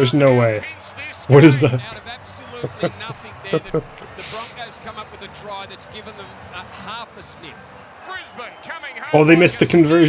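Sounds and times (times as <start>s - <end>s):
crowd noise: 0.0s - 10.0s
television commentator talking: 0.0s - 10.0s.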